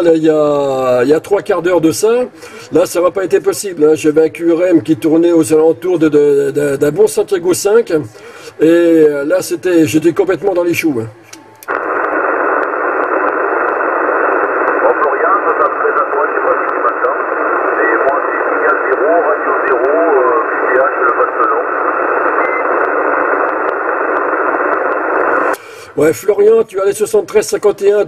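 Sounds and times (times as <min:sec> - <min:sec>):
radio static hiss: 0:11.7 - 0:26.5
weak garbled radio voice: 0:14.6 - 0:22.4.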